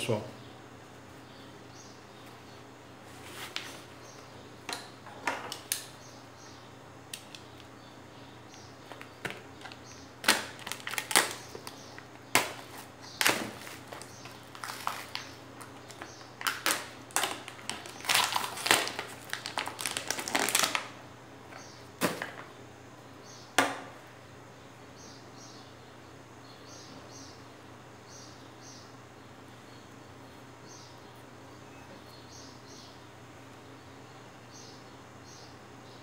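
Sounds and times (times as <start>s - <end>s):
plastic packaging crackling: 8.8s - 21.0s.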